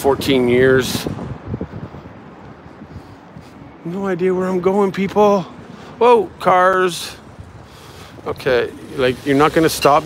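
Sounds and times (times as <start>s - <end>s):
wind on microphone: 0.0s - 3.8s.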